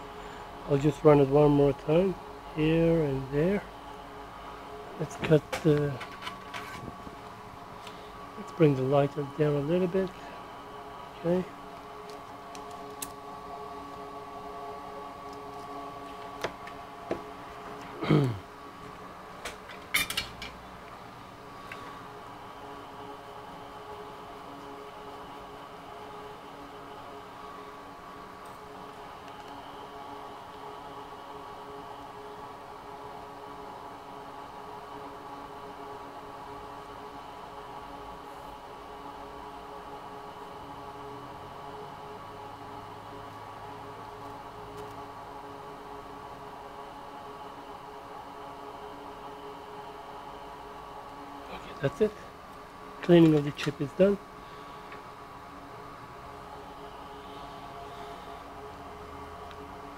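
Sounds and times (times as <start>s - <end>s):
fan humming: 0.0s - 59.9s.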